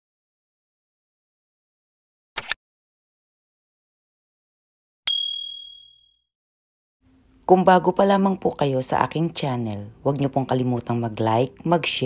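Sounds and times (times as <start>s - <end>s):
bright notification ding: 5.1s - 6.1s.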